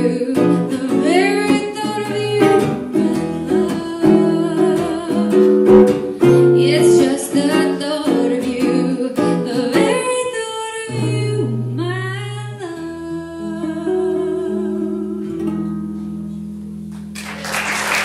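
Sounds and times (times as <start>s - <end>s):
woman singing: 0.0s - 15.7s
acoustic guitar: 0.0s - 17.4s.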